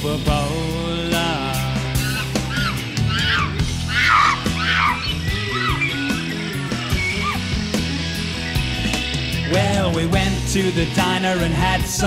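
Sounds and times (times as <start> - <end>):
rock band accompaniment: 0.0 - 12.0
lead notes bending in pitch: 2.0 - 9.5.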